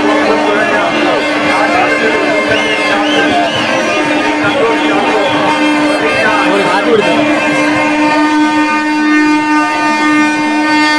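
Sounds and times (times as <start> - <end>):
steady horn-like tone: 0.0 - 10.9.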